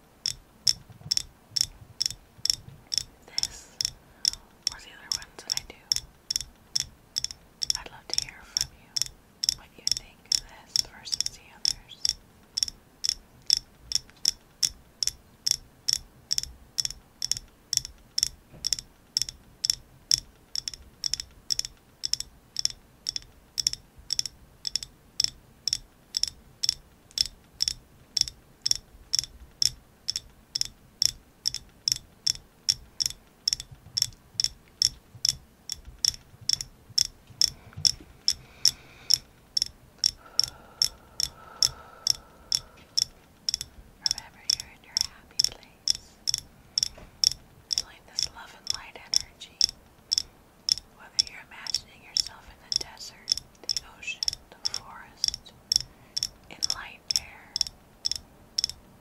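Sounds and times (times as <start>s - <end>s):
fingernails tapping: 0.2s - 7.9s, 12.0s - 43.7s, 46.3s - 48.0s, 50.1s - 50.8s, 52.2s - 58.8s.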